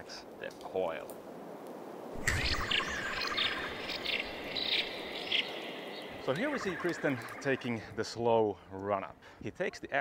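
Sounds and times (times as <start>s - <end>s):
steady background hiss: 0.0s - 10.0s
birds chirping: 2.2s - 8.4s.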